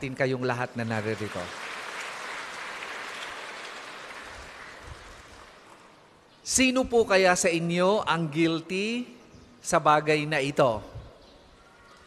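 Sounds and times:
congregation applauding: 0.6 - 6.1.

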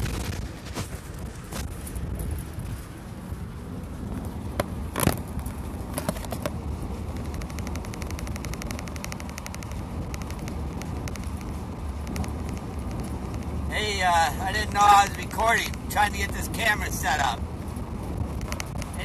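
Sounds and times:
vehicle cabin rumble: 0.0 - 19.0
fast faint ticking: 6.7 - 19.0.

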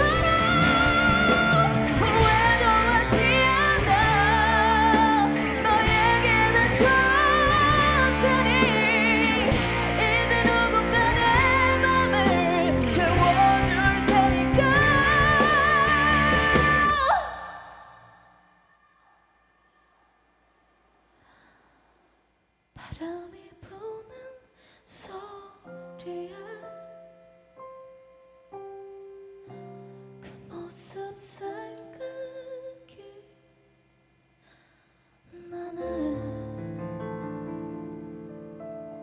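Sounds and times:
piano accompaniment: 0.0 - 16.9, 35.8 - 39.0
faint breath: 21.1 - 22.2, 24.5 - 24.9, 34.4 - 35.2
woman singing softly: 22.8 - 27.1, 30.2 - 33.4, 35.3 - 36.8.

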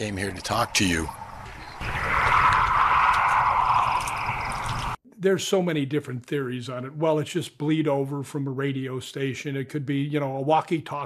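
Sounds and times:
low rumble: 0.0 - 5.0.

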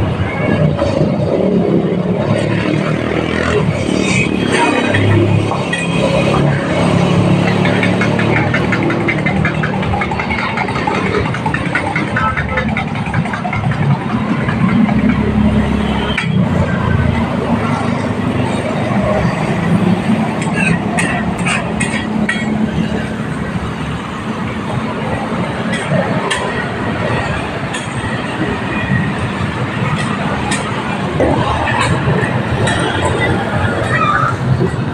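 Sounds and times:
motor traffic: 0.0 - 34.9.

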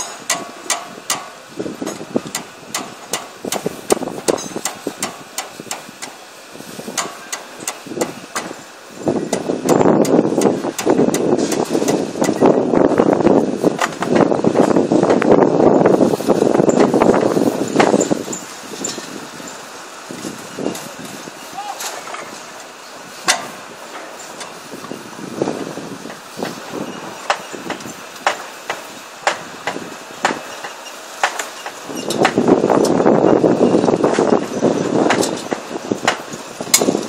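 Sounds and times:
strand pusher machine rattling: 0.0 - 37.0
metallic clicks and knocks: 35.1 - 37.0.

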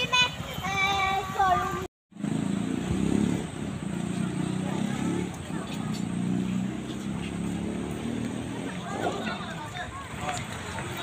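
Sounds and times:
people talking: 3.9 - 7.6, 8.3 - 11.0.

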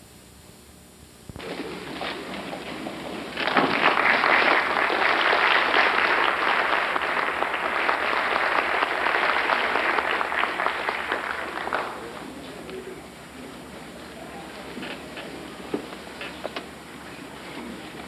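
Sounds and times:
audience applauding: 1.4 - 12.9.

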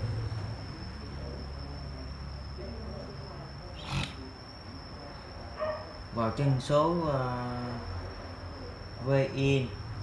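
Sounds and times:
high-pitched whine: 0.0 - 10.0.

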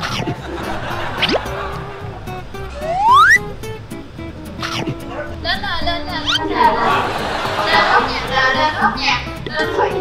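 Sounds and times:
squeaky rising pitch glides: 2.7 - 3.5, 6.2 - 6.6
voices: 4.8 - 10.0.

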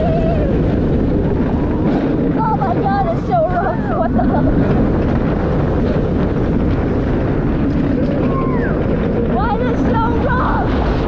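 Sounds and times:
roller coaster rumbling on track: 0.0 - 11.0
wind rushing over microphone: 0.0 - 11.0.

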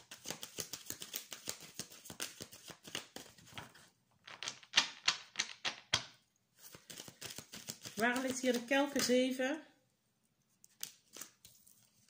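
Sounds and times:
cards being shuffled: 0.0 - 6.0, 6.6 - 9.3, 10.6 - 12.0.

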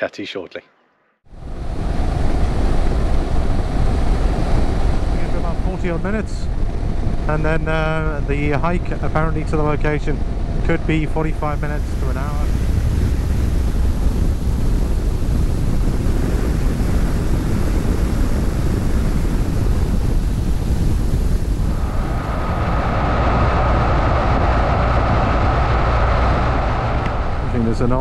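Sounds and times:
steady higher whine: 1.3 - 28.0
wind rush over microphone: 1.3 - 28.0.

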